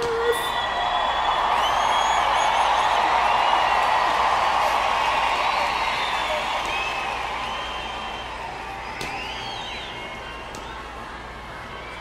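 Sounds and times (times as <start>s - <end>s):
crowd screaming and cheering: 0.0s - 12.0s
shrill screams and whistles: 0.0s - 12.0s.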